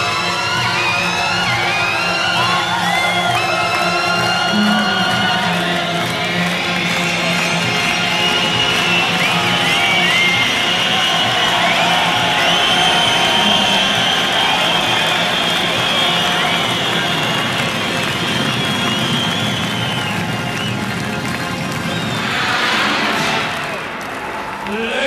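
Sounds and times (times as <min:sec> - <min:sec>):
crowd cheering: 0:00.0 - 0:25.0
high whistles: 0:00.1 - 0:23.8
sustained low musical chord: 0:04.4 - 0:07.5.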